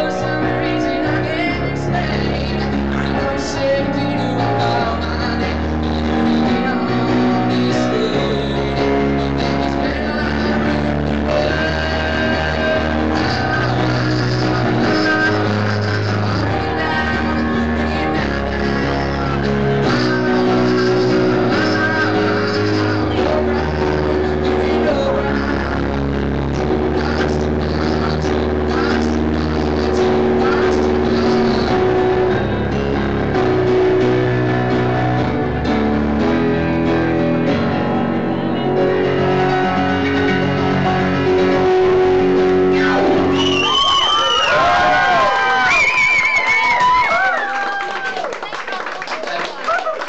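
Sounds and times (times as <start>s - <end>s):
steady bass: 0.0s - 47.3s
keyboard playing piano chords: 0.0s - 48.6s.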